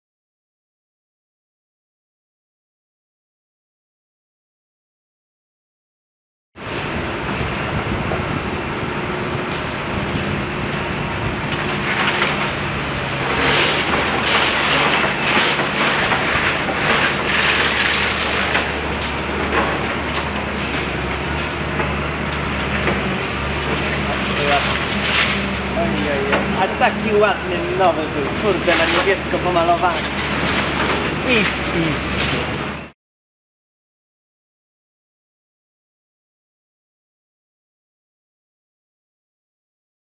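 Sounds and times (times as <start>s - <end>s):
excavator diesel engine running: 6.6s - 32.9s
rubble crunching and clattering: 9.5s - 32.9s.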